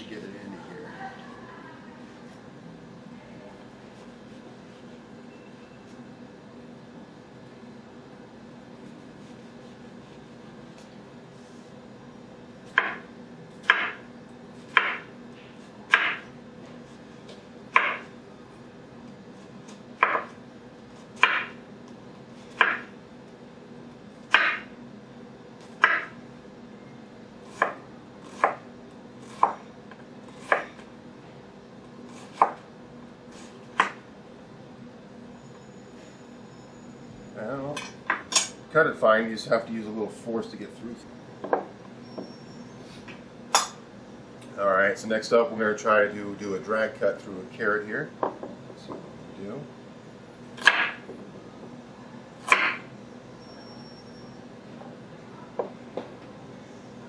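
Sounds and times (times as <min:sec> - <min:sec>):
knife cutting onion on board: 0:14.6 - 0:16.3, 0:19.7 - 0:20.4, 0:21.0 - 0:21.6, 0:27.4 - 0:29.6, 0:30.2 - 0:30.8, 0:32.1 - 0:32.6, 0:52.4 - 0:52.8.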